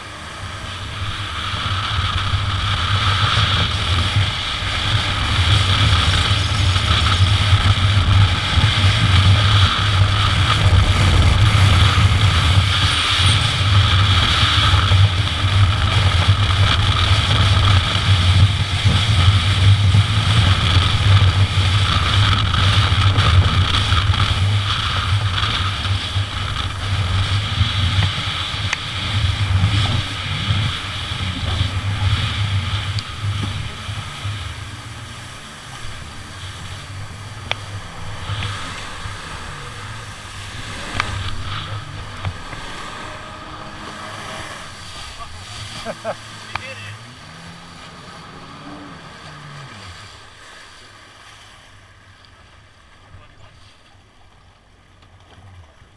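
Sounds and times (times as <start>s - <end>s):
jet ski engine droning: 0.0s - 55.9s
water rushing and spraying: 0.0s - 55.9s.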